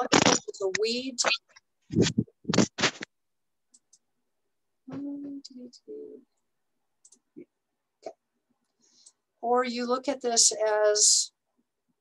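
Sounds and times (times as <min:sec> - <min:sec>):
scratchy rustling noises: 0:00.0 - 0:03.1.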